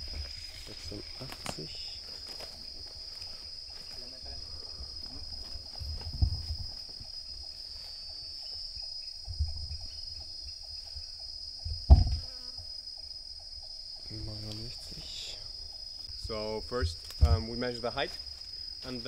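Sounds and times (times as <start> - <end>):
insect ticking call: 0.0 - 19.0
insects chorus: 0.0 - 19.0
low thumps: 5.7 - 7.1, 9.2 - 10.2, 11.6 - 12.3.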